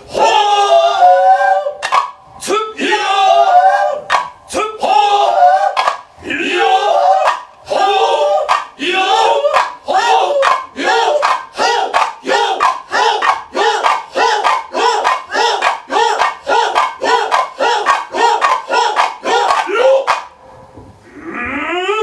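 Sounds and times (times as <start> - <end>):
long rising cry: 0.0 - 1.9, 4.8 - 20.2, 21.0 - 22.0
man and woman chanting: 0.0 - 20.3.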